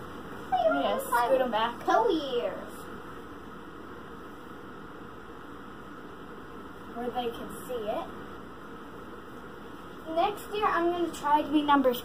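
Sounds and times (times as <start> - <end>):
low hiss of room tone: 0.0 - 12.0.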